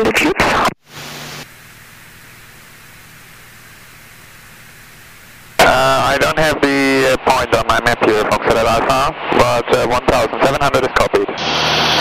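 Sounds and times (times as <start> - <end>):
aircraft radio hiss: 0.0 - 12.0.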